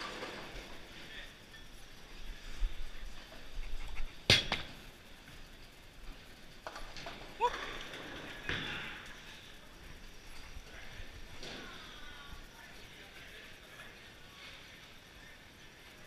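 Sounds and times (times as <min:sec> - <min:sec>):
bowling balls and pins clattering: 0:06.7 - 0:09.0.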